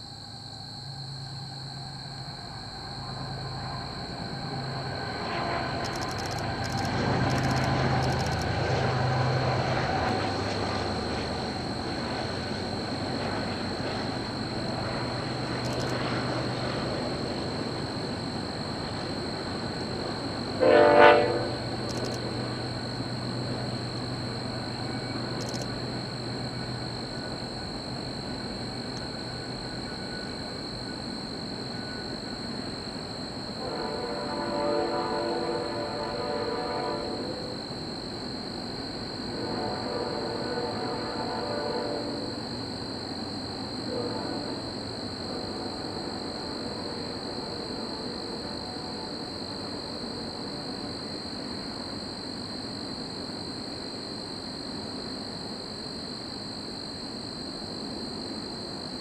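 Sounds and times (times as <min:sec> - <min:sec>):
rumble of train cars: 0:00.0 - 0:52.0
locomotive engine drone: 0:00.0 - 0:52.5
train horn blast: 0:05.2 - 0:05.8, 0:20.6 - 0:21.7, 0:33.6 - 0:37.5, 0:39.3 - 0:42.3, 0:43.9 - 0:44.6.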